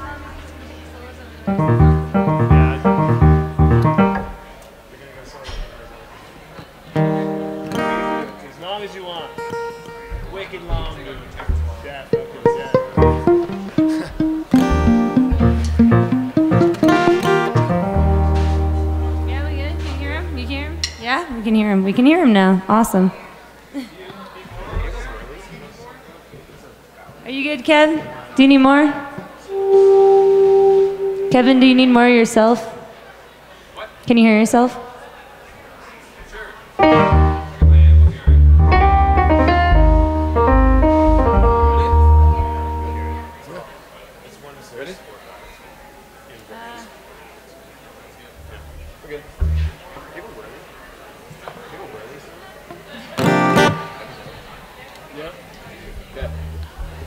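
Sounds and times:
electric keyboard playing loud chords: 0.0s - 4.6s, 11.5s - 20.8s, 29.5s - 32.2s, 36.8s - 43.5s.

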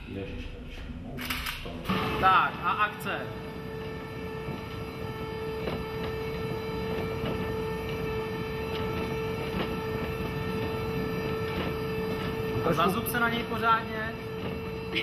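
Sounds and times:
continuous rumble: 0.1s - 15.0s
electric vehicle whine: 1.9s - 15.0s.

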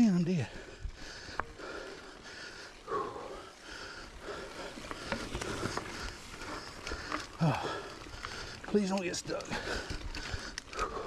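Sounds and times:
heavy breathing: 0.4s - 11.0s
bike clicks and rattles: 0.6s - 11.0s.

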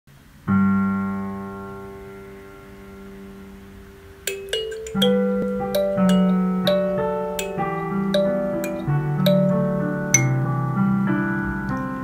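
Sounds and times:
piano chord ringing: 4.3s - 11.0s.

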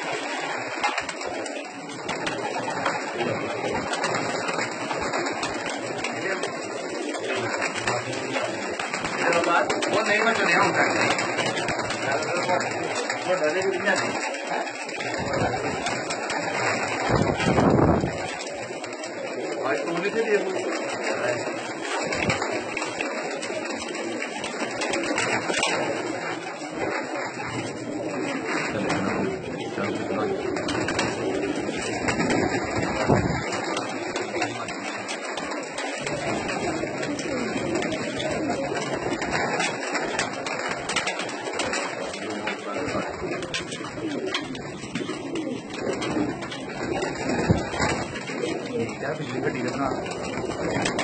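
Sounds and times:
pigeons cooing: 0.0s - 51.0s
wings flapping: 0.0s - 51.0s.

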